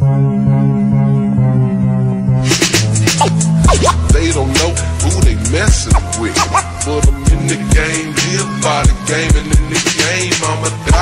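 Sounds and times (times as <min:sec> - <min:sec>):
deep bass: 0:00.1 - 0:11.0
hi-hats: 0:02.5 - 0:11.0
gliding pitched line: 0:03.0 - 0:04.2, 0:05.8 - 0:07.0.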